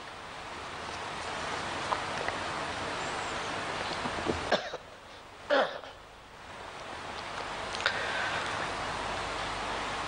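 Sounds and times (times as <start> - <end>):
steady hiss: 0.0 - 10.0
person coughing: 4.5 - 4.8, 5.5 - 6.0.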